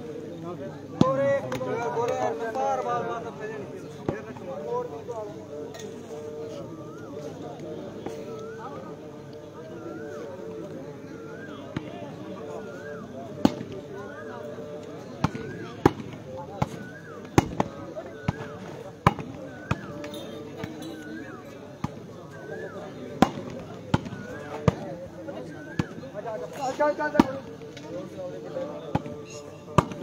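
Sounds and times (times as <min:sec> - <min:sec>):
voices: 0:00.0 - 0:30.0.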